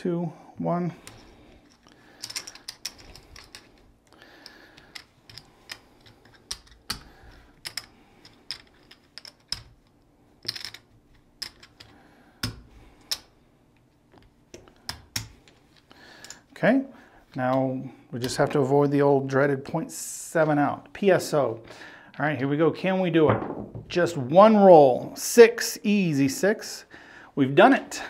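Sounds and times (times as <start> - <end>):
casino chips clicking: 1.8 - 3.8, 4.4 - 13.3.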